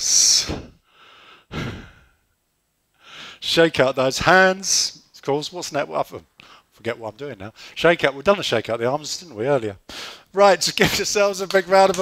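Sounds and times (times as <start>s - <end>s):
man sighing into microphone: 1.5s - 2.2s.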